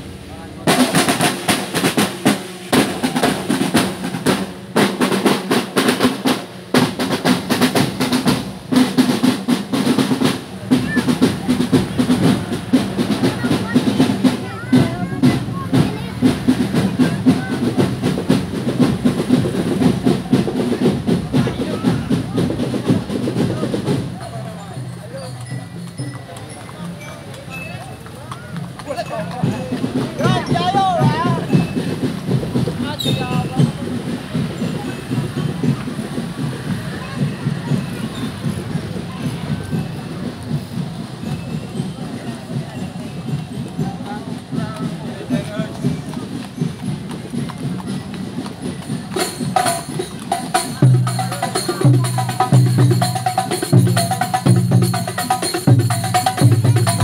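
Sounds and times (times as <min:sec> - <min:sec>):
crowd voices: 0:00.0 - 0:57.0
marching drum band: 0:00.0 - 0:57.0
bell lyres: 0:21.8 - 0:57.0.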